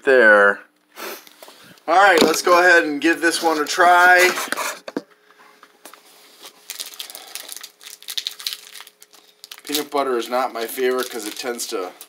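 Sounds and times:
plastic wrapper crinkling: 0:05.9 - 0:12.0.

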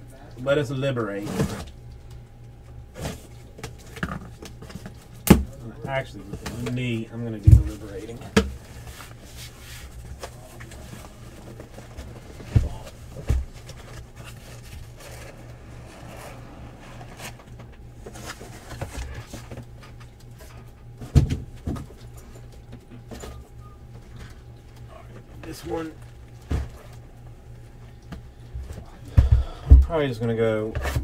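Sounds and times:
low steady hum: 0:00.0 - 0:31.0
cardboard sliding and rustling: 0:08.8 - 0:19.5.

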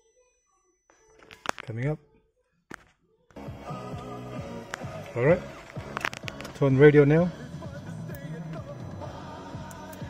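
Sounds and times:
radio music through car stereo: 0:03.3 - 0:10.0.

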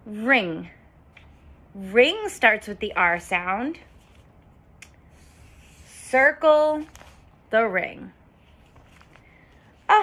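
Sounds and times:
marker rubbing on paper: 0:05.1 - 0:06.2.

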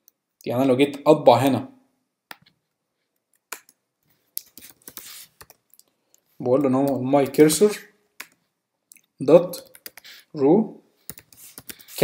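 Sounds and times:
computer keyboard keystrokes: 0:11.1 - 0:11.8.

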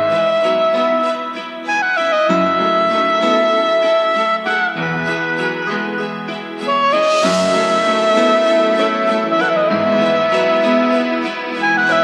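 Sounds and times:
slow pop ballad music: 0:00.0 - 0:12.0.

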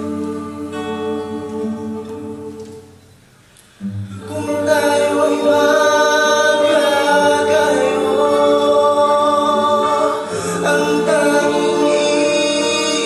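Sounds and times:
vocal ensemble singing in harmony: 0:00.0 - 0:03.1, 0:03.8 - 0:13.0.

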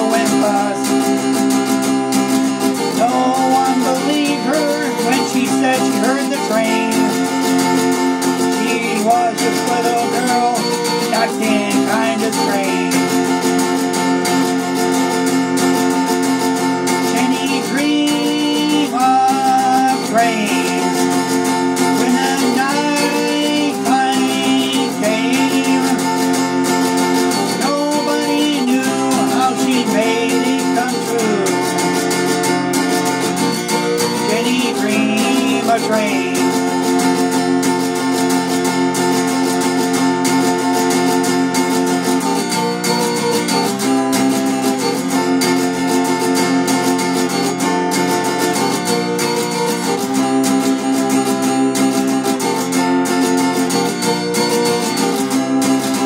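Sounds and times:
acoustic guitar: 0:00.0 - 0:56.0
sliding melody line: 0:00.0 - 0:56.0.

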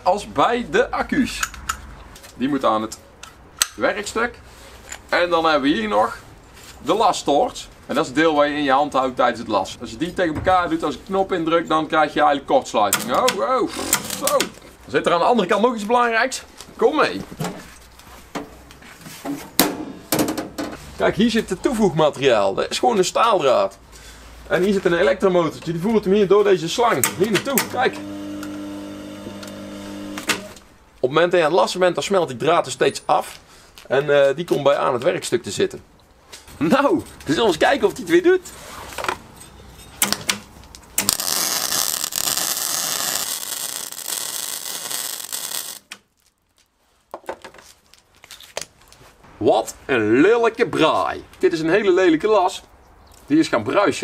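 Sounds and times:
welding arc crackling: 0:13.0 - 0:14.5, 0:27.7 - 0:30.4, 0:41.0 - 0:46.0.

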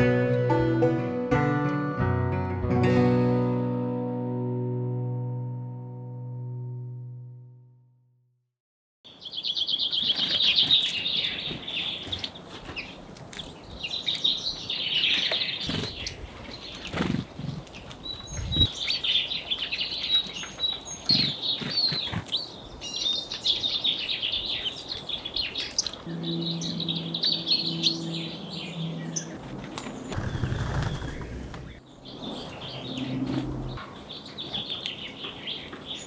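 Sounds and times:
songbirds chirping: 0:09.1 - 0:36.0
wing flutters: 0:16.8 - 0:17.6.

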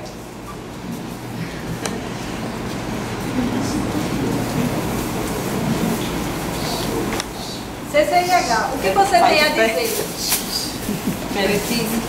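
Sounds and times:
audience laughing: 0:10.8 - 0:11.4.

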